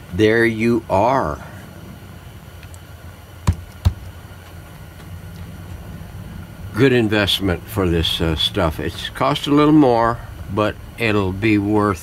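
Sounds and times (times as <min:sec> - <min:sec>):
rubber mold knocks: 0:03.5 - 0:04.1.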